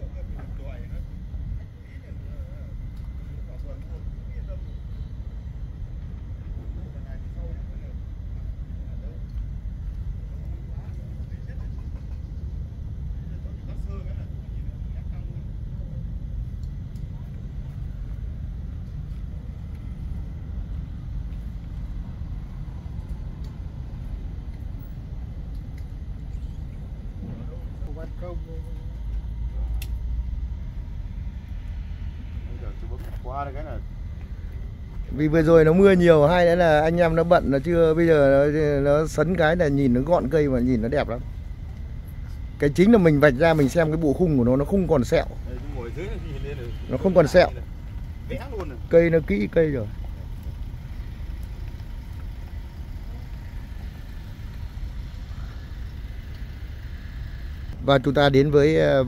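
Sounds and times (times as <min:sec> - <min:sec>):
low outdoor rumble: 0:00.0 - 0:59.0.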